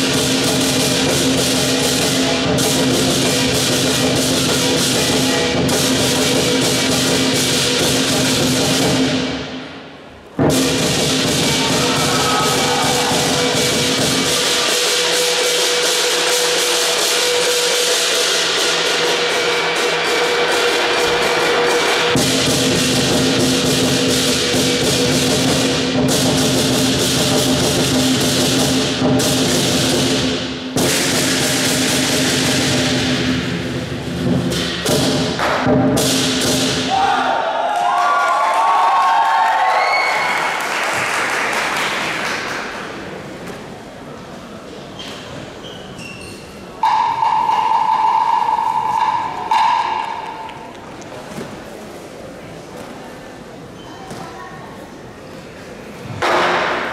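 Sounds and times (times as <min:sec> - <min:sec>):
large drum pounding: 0:00.0 - 0:09.7, 0:10.4 - 0:37.0
cymbals clashing: 0:00.0 - 0:37.4, 0:46.4 - 0:50.7
crowd cheering and applause: 0:11.4 - 0:13.9, 0:36.9 - 0:43.0.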